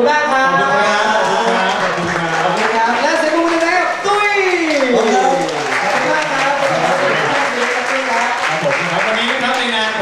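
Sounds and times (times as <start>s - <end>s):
voices calling out: 0.7s - 7.5s
audience applauding: 1.1s - 10.0s.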